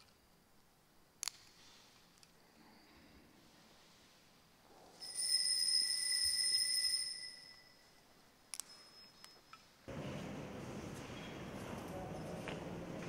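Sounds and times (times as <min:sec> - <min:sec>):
altar bell ringing: 0:05.0 - 0:07.8.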